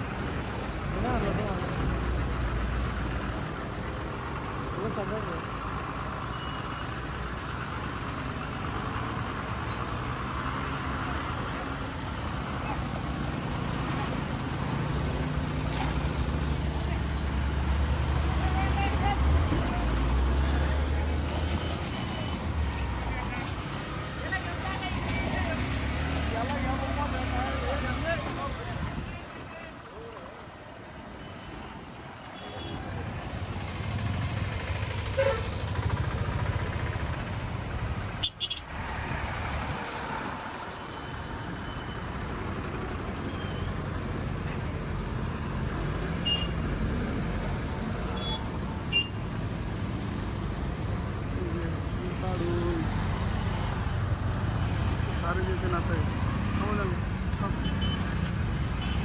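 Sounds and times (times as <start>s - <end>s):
truck engines running: 0.0s - 59.0s
motorcycle engines running: 33.0s - 38.0s.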